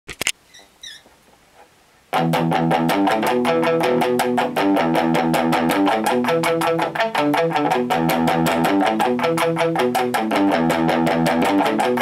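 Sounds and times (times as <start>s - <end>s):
faint high squeaks: 0.4s - 1.1s.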